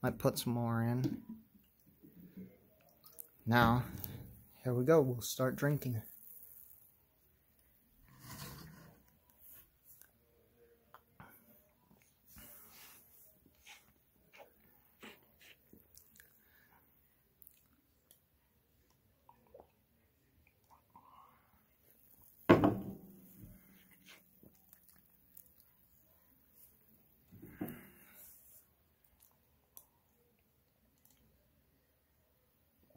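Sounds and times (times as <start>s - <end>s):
person sipping and swallowing: 18.9s - 21.4s.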